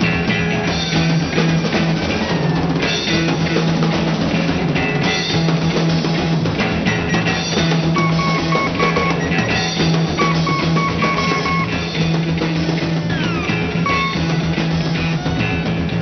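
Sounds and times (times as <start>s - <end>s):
drum kit with cymbals: 0.0s - 16.0s
electric guitar: 0.0s - 16.0s.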